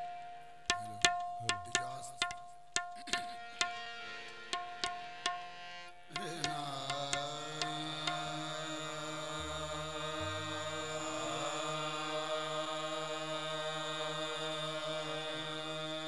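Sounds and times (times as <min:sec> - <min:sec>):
harmonium drone and melody: 0:01.8 - 0:16.0.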